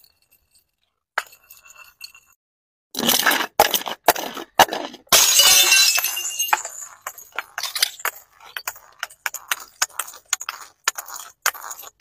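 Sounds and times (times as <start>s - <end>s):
glass jar shattering: 5.1s - 10.2s
beads and shards pattering: 6.5s - 12.0s.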